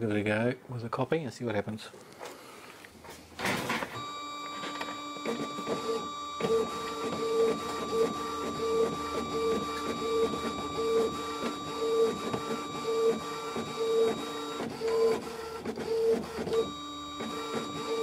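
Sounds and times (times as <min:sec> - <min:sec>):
printer whirring pulse: 0:03.4 - 0:18.0
printer motor whine: 0:03.5 - 0:18.0.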